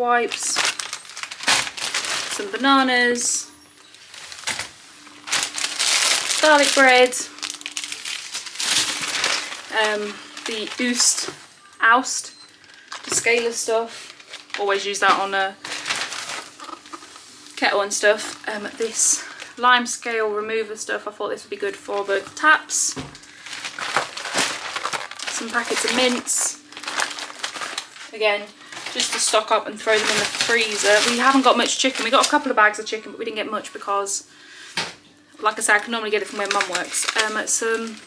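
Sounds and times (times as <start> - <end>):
plastic bags crinkling: 0.0 - 11.6, 12.5 - 19.6, 21.6 - 32.8, 35.4 - 38.0.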